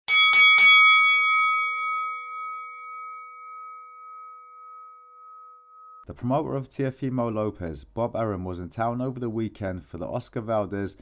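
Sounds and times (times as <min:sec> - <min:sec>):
bell-like chime ringing: 0:00.1 - 0:06.1.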